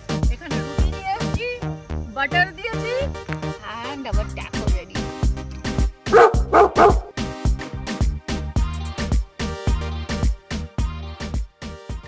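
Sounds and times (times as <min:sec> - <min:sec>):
background music with steady beat: 0:00.0 - 0:12.0
dog barking: 0:06.1 - 0:07.2.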